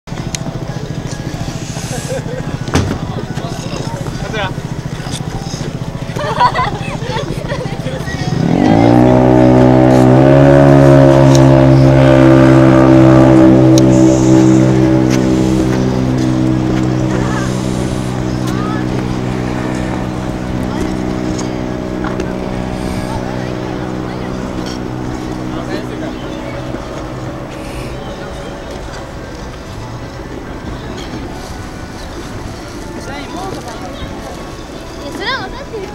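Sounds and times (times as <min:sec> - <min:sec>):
loud low droning tone: 0:00.1 - 0:35.6.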